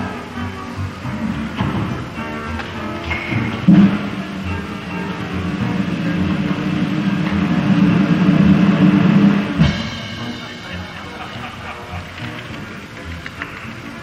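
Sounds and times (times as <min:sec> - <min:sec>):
theatre orchestra playing: 0:00.0 - 0:14.0
steady low beat: 0:03.0 - 0:12.2.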